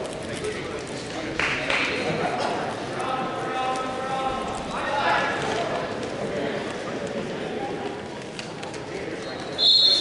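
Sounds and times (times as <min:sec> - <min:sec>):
crowd murmur: 0:00.0 - 0:10.0
referee's whistle: 0:09.4 - 0:10.0.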